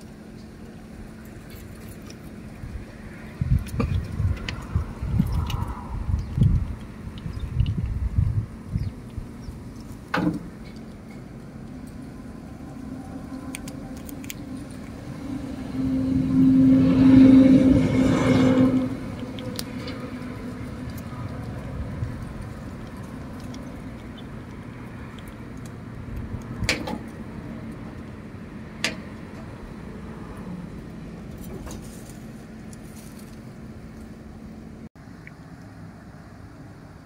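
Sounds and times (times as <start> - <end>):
low background rumble: 0.0 - 37.0
vehicle engine hum: 0.0 - 37.0.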